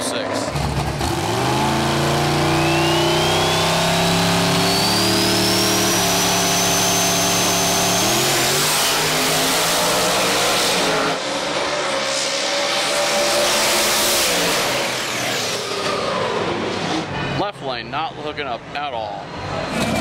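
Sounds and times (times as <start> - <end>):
drag car engines revving: 0.0 - 20.0
high whine: 1.9 - 11.2.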